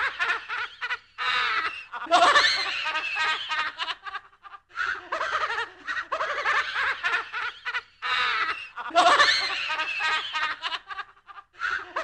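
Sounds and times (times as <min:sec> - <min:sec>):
spooky horror laugh: 0:00.0 - 0:12.0.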